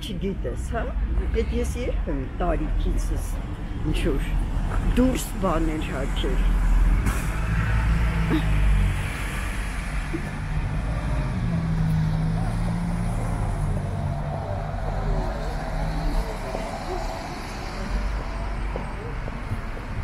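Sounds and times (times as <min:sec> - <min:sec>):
bus engine rumbling: 0:00.0 - 0:20.0
tyres on wet road: 0:00.0 - 0:20.0
passing car engines humming: 0:03.4 - 0:20.0.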